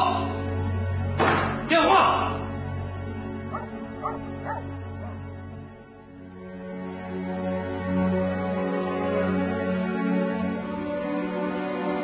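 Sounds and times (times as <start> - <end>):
soft music with held notes: 0.0 - 12.0
dog barking: 3.5 - 5.3.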